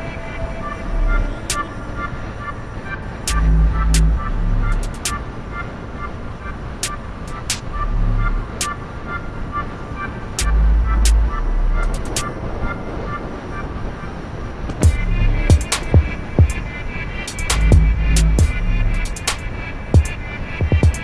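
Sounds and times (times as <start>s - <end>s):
wind and road noise: 0.0s - 21.0s.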